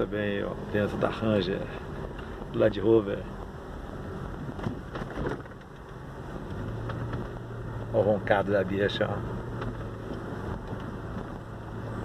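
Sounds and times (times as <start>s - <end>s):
car engine rumble inside cabin: 0.0s - 12.0s
road noise: 0.0s - 12.0s.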